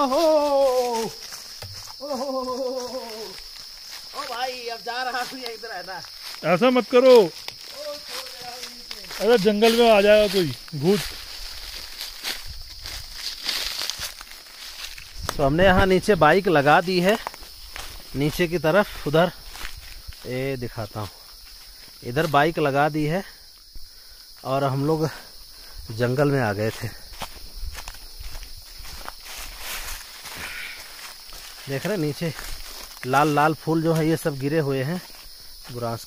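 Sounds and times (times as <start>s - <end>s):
footsteps crunching dry leaves: 0.0s - 22.7s, 25.4s - 36.0s
high-pitched insect drone: 0.0s - 36.0s.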